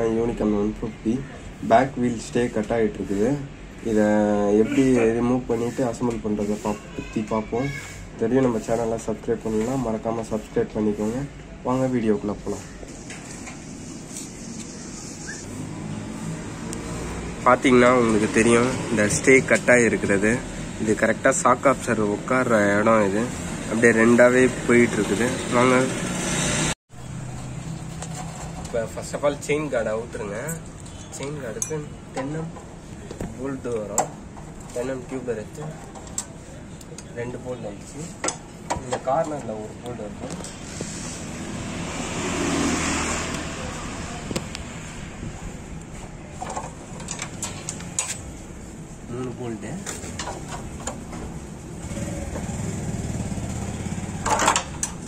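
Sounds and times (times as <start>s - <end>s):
voices: 0.0s - 13.4s.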